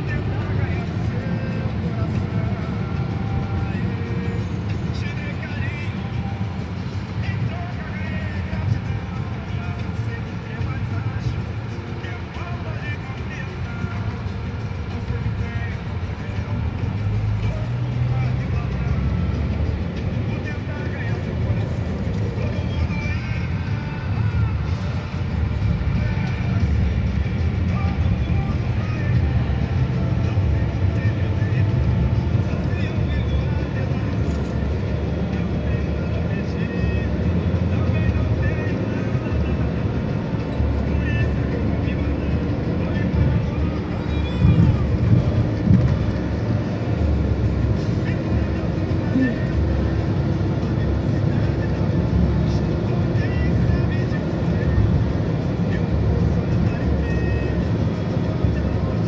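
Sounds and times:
car cabin road rumble: 0:00.0 - 0:59.0.

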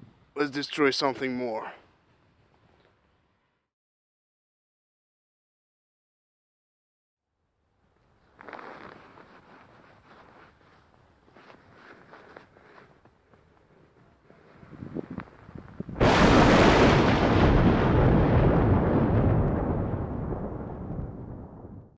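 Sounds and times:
hand crunching snow: 0:08.2 - 0:15.4
loud explosion-like boom: 0:16.0 - 0:21.9.

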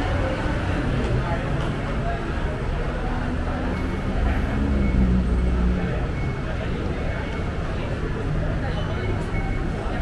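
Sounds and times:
voices of passers-by: 0:00.0 - 0:10.0.

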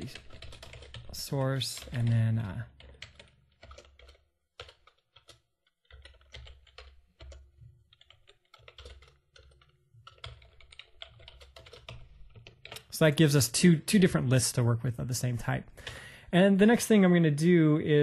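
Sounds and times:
faint keyboard typing: 0:00.0 - 0:14.4, 0:15.6 - 0:16.8.

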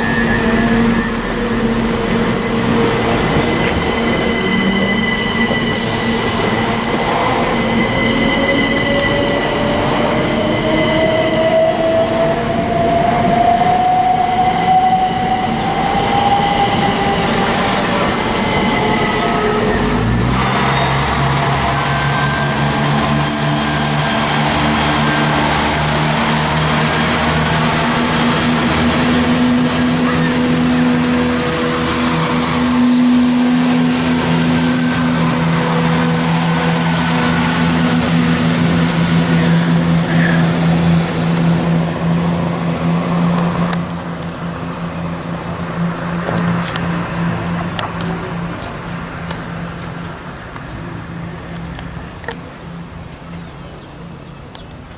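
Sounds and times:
train running past: 0:00.0 - 0:54.9.

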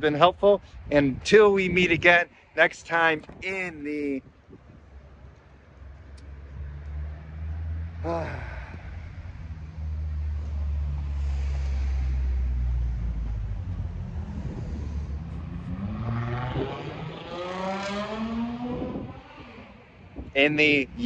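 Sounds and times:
low traffic rumble: 0:00.0 - 0:21.0
motor vehicle accelerating: 0:05.8 - 0:21.0.

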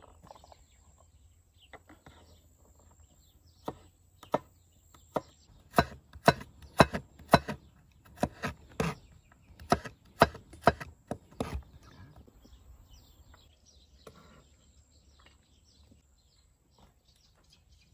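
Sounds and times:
knife chopping on wooden board: 0:05.1 - 0:09.0, 0:09.6 - 0:11.6.

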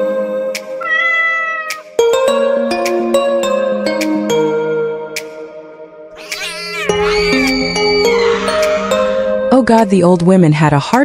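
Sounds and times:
kitten meowing: 0:00.8 - 0:01.8, 0:06.2 - 0:09.0.

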